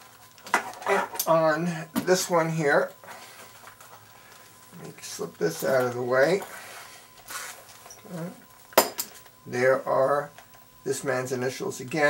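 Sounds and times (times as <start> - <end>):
faint handling rustle: 2.1 - 9.4.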